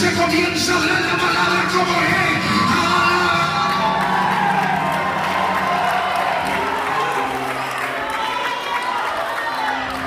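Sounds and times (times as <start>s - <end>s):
music with long held chords: 0.0s - 8.4s
congregation cheering and shouting: 0.2s - 10.0s.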